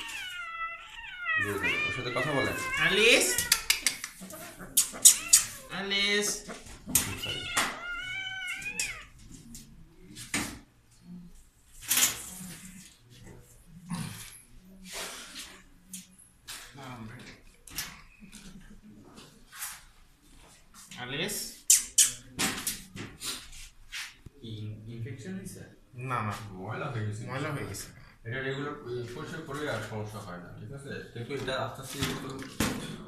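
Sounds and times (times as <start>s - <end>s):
kitten crying: 0.0s - 3.8s, 4.8s - 5.8s, 7.0s - 9.2s
cat meowing: 0.0s - 4.1s, 4.8s - 5.8s, 6.9s - 9.2s
kitten hissing: 0.0s - 5.7s, 21.6s - 22.3s.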